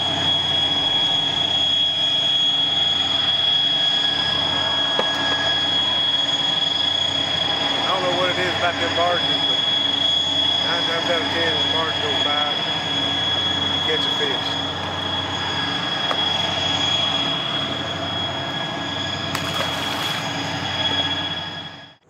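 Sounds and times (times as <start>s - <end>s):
high-pitched whine: 0.0s - 22.0s
low steady hum: 14.6s - 21.4s.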